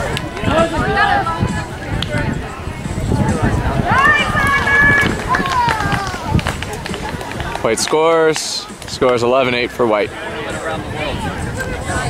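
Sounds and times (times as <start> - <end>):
players shouting: 3.4 - 8.8.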